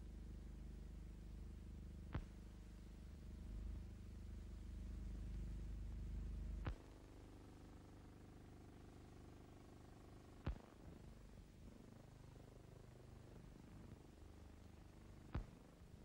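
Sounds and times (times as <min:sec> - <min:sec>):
film soundtrack hum and hiss: 0:00.0 - 0:16.0.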